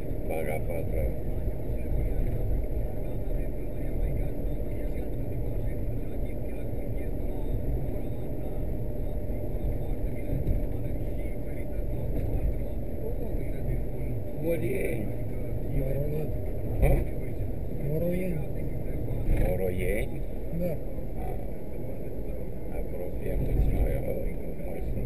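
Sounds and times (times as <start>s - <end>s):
car engine and tyre noise: 0.0s - 25.0s.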